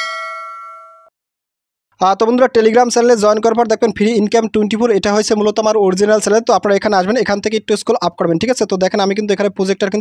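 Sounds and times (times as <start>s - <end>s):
bell-like ding: 0.0s - 1.1s.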